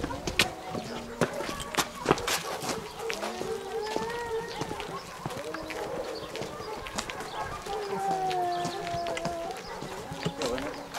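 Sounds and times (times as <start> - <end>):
footsteps on concrete: 0.0 - 10.9.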